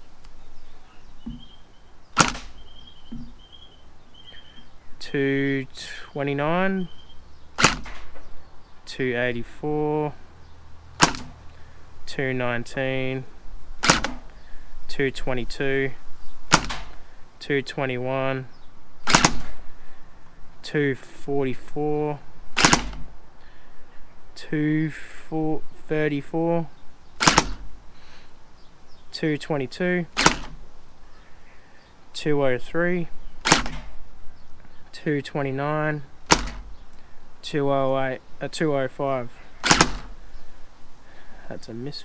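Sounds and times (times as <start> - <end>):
gel blaster shot crack: 19.1 - 19.6.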